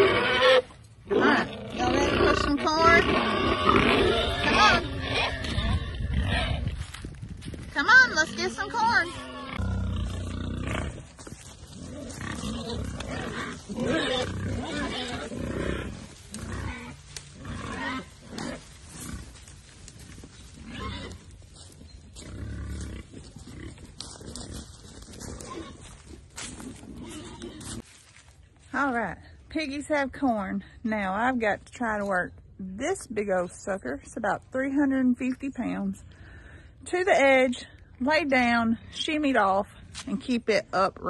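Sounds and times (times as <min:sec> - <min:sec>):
pigs grunting and squealing: 0:00.0 - 0:06.8, 0:08.0 - 0:19.4, 0:20.0 - 0:21.3, 0:22.2 - 0:27.8.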